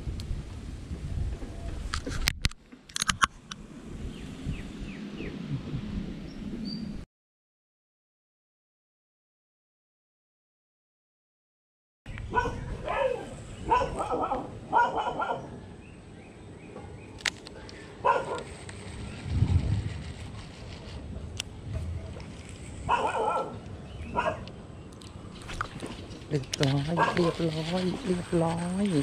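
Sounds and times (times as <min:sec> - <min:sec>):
low rumble: 0:03.4 - 0:07.0, 0:18.5 - 0:29.0
dog barking: 0:12.3 - 0:15.6, 0:18.0 - 0:18.5, 0:22.9 - 0:24.5, 0:27.0 - 0:27.4.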